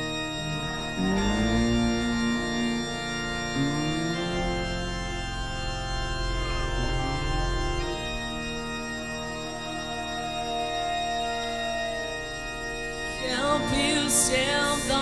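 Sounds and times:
organ-like keyboard notes: 0:00.0 - 0:15.0.

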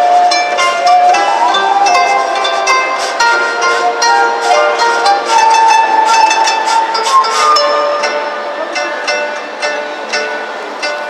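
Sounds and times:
long shakuhachi note: 0:00.0 - 0:09.4
plucked koto strings: 0:00.0 - 0:11.0.

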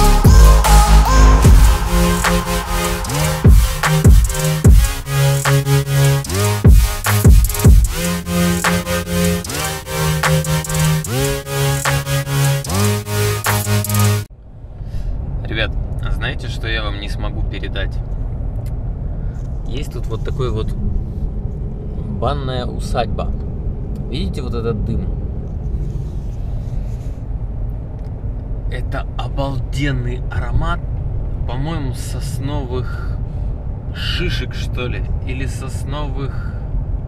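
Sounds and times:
background music: 0:00.0 - 0:14.3.

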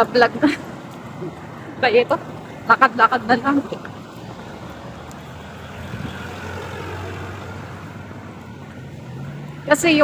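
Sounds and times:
street noise: 0:00.0 - 0:10.0
passing vehicle engine drone: 0:00.6 - 0:10.0.

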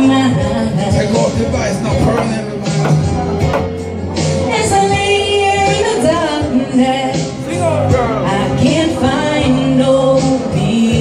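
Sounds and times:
woman singing karaoke: 0:00.0 - 0:01.4, 0:03.0 - 0:11.0
backing track music: 0:00.0 - 0:11.0.

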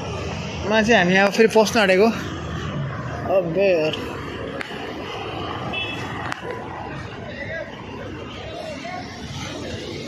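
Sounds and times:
street noise: 0:00.0 - 0:10.0
tyres rolling on road: 0:00.0 - 0:10.0.

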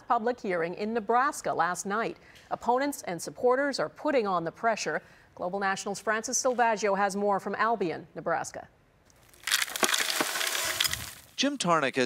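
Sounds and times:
chips poured into plastic bucket: 0:09.2 - 0:11.4.

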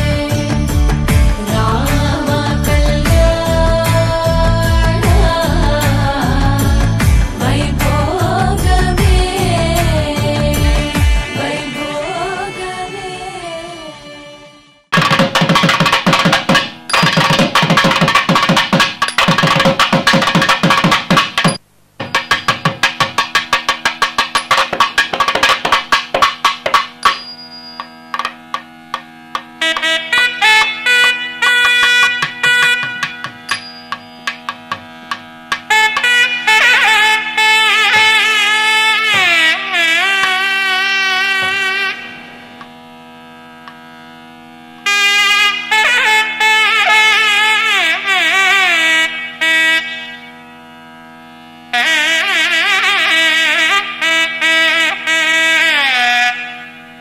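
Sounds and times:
steady drone: 0:00.0 - 0:14.9, 0:26.9 - 0:55.7
nadaswaram melody: 0:00.0 - 0:57.0
rapid drum strokes: 0:14.9 - 0:36.5.

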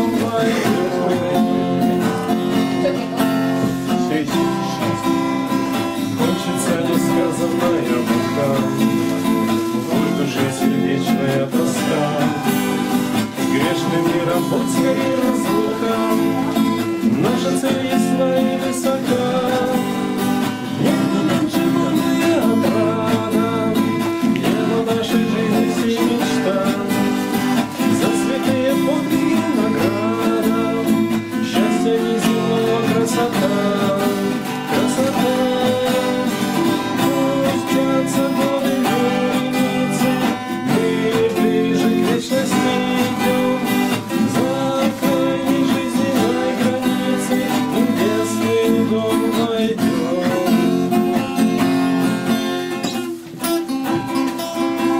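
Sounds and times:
acoustic guitars playing: 0:00.0 - 0:54.9.

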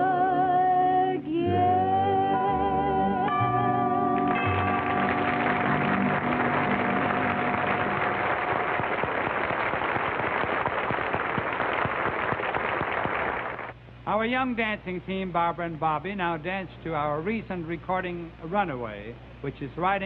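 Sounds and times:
song closing chord: 0:01.4 - 0:09.4
audience applauding: 0:04.2 - 0:13.8.

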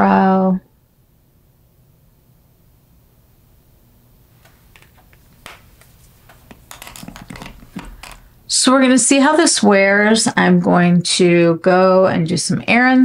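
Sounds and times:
makeup tools clicking and tapping: 0:04.8 - 0:08.3.

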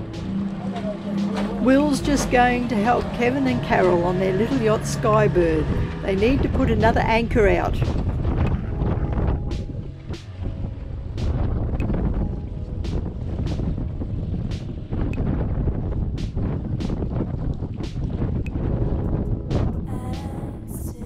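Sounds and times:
choppy water: 0:00.0 - 0:21.0
wind buffeting microphone: 0:00.0 - 0:21.0.

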